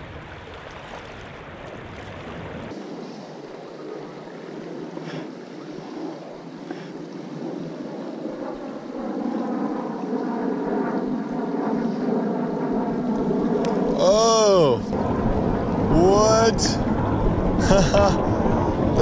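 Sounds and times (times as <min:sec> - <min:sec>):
creek water flowing: 0:00.0 - 0:07.4, 0:13.4 - 0:19.0
wind on microphone: 0:00.0 - 0:19.0.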